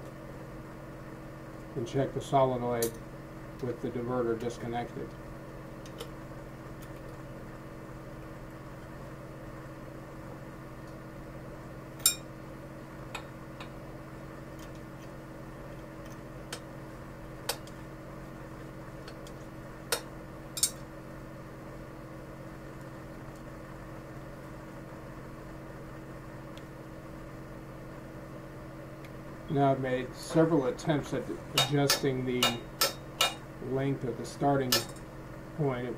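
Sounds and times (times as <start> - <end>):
steady low hum: 0.0 - 35.9.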